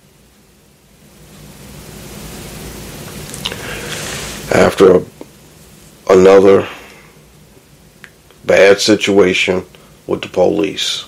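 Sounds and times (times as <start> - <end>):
faint low hum: 0.0 - 11.0
steady background hiss: 0.0 - 11.0.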